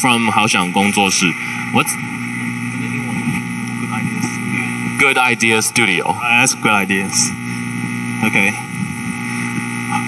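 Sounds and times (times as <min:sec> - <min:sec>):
electrical hum through pa system: 0:00.0 - 0:10.0.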